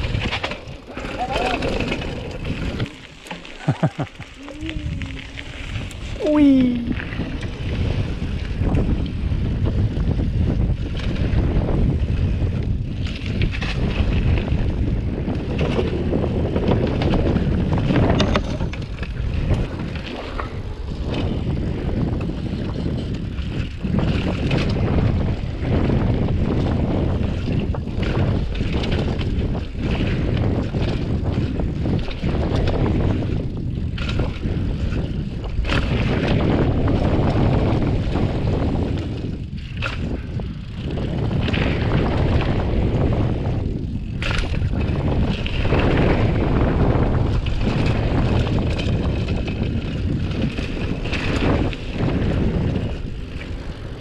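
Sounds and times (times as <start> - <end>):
mountain bike tyre noise: 0.0 - 54.0
wind on microphone: 0.0 - 54.0.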